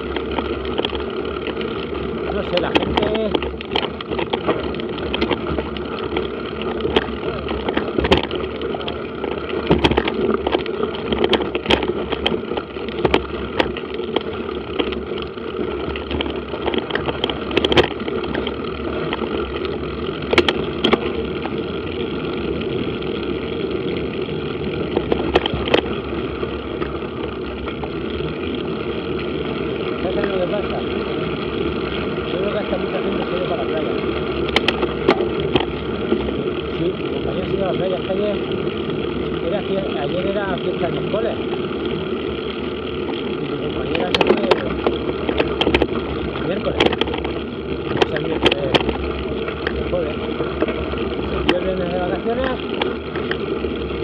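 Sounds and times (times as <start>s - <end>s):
bike knocks and rattles: 0.0s - 54.0s
bike tyres rumbling on gravel: 0.0s - 54.0s
wind: 0.0s - 54.0s.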